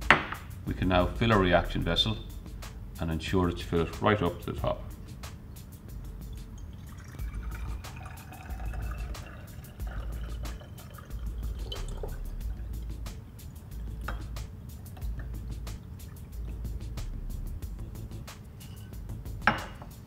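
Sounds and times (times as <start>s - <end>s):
background music: 0.0s - 20.0s
water pouring into glass bottle: 6.3s - 14.4s.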